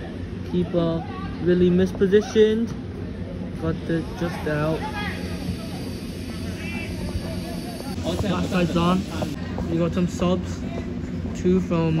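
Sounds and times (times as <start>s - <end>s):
distant calling voices: 4.0s - 9.4s.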